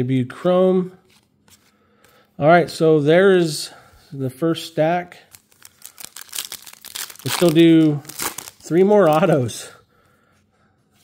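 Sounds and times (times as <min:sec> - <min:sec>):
foil wrapper crinkling: 0:05.2 - 0:09.5.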